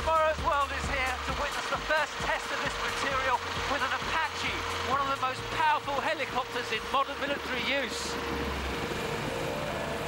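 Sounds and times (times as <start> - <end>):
helicopter rotor and turbine drone: 0.0 - 10.0.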